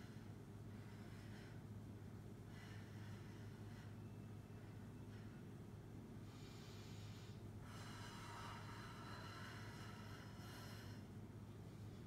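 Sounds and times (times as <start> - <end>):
faint low room hum: 0.0 - 12.0.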